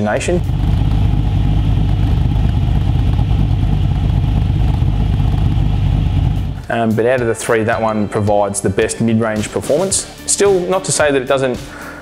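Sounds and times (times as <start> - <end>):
car engine idling: 0.0 - 6.6.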